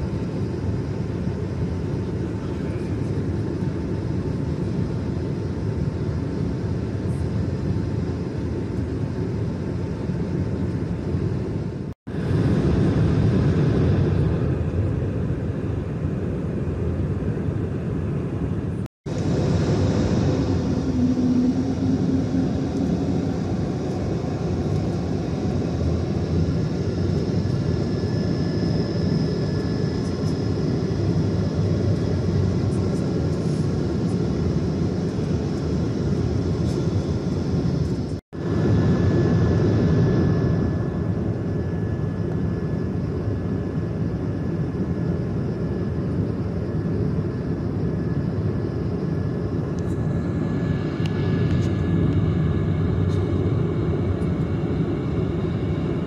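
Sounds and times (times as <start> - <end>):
airliner cabin rumble: 0.0 - 56.0
faint steady whine: 0.0 - 56.0.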